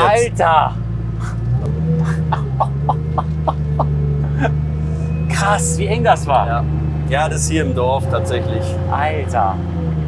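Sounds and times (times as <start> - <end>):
car engine droning: 0.0 - 10.0
man laughing: 2.0 - 4.6.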